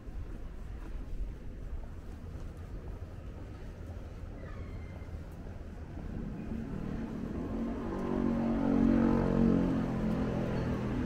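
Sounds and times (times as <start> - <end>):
low rumble: 0.0 - 10.4
vehicle engine passing: 5.9 - 11.0.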